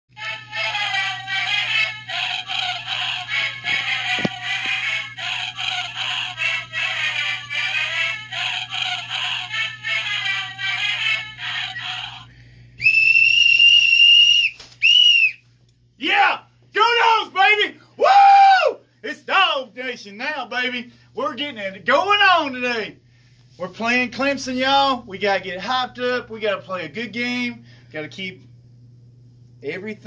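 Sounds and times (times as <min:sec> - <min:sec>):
music: 0:00.2 - 0:12.3
whistle blasts: 0:12.8 - 0:15.4.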